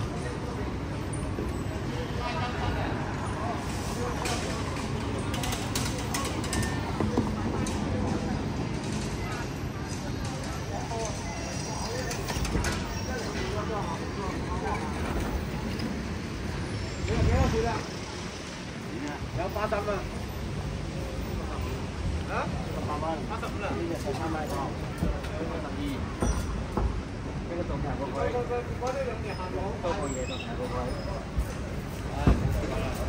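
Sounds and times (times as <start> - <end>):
passers-by talking: 0.0 - 33.0
traffic noise: 0.0 - 33.0.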